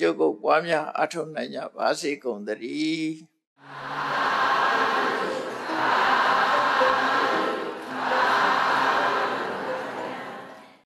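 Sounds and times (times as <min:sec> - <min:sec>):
congregation chanting in unison: 0:03.6 - 0:10.8.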